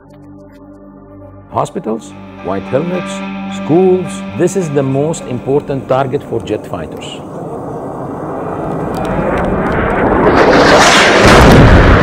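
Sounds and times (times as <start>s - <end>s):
rushing noise: 2.3s - 12.0s
heavy explosion blast: 7.6s - 12.0s.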